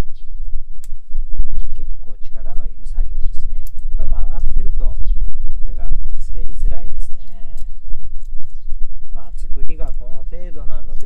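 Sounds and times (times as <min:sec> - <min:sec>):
wind on microphone: 0:00.0 - 0:11.0.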